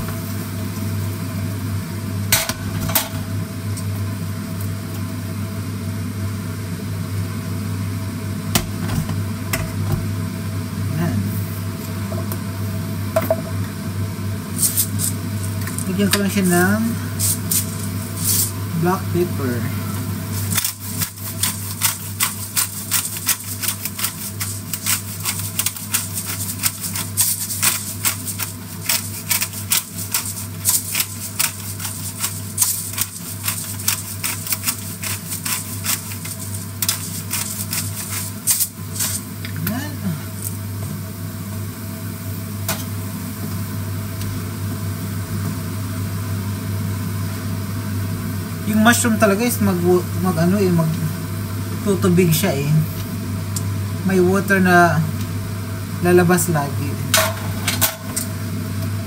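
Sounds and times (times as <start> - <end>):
vegetables sizzling in a pan: 14.4 - 18.8, 19.9 - 43.8.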